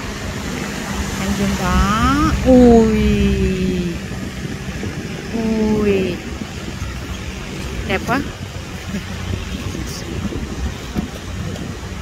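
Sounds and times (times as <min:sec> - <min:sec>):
ocean surf: 0:00.0 - 0:12.0
wind rumble: 0:00.0 - 0:12.0
woman exclaiming: 0:01.6 - 0:04.0, 0:05.4 - 0:06.2.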